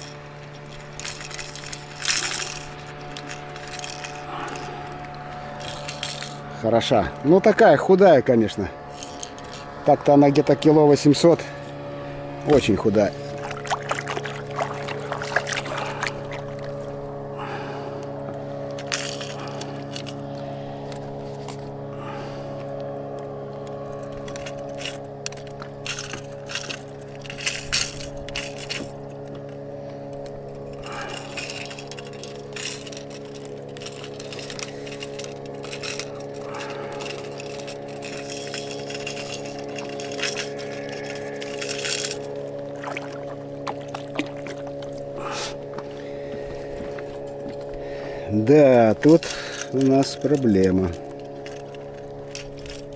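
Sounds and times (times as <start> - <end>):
clicks and rattles of handling: 0.0 - 8.2, 8.8 - 11.8, 18.0 - 21.8, 22.6 - 45.9, 48.4 - 52.9
steady low hum: 0.0 - 52.9.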